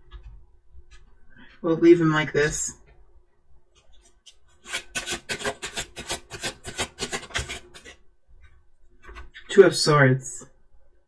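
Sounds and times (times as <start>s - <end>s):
cards being shuffled: 4.0s - 7.9s.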